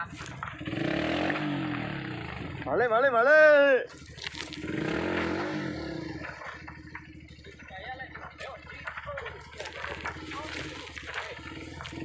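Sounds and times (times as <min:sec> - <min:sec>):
dirt bike engine idling: 0:00.0 - 0:12.0.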